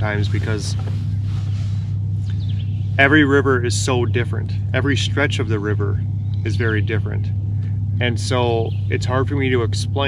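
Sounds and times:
electric motor humming: 0.0s - 10.0s.

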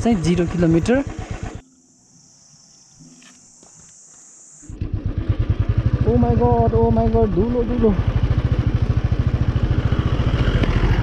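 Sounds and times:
motorcycle engine: 0.0s - 2.1s, 4.6s - 11.0s.

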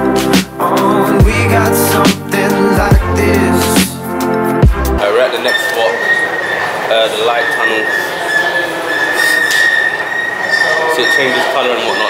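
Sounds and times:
echoing station noise: 5.0s - 12.0s
high-pitched metal squeal: 5.0s - 12.0s.

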